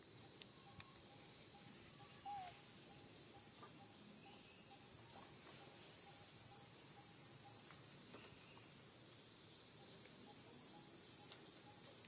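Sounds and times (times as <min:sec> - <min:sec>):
insect chorus: 0:00.0 - 0:12.0.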